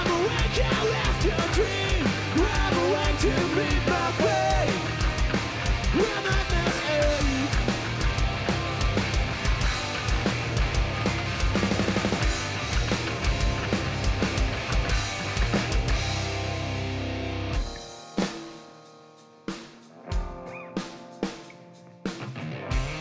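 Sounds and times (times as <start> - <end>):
live rock band playing: 0.0 - 23.0.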